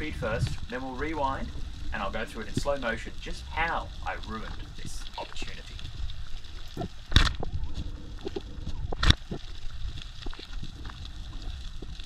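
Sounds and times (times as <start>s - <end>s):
low underwater rumble: 0.0s - 12.0s.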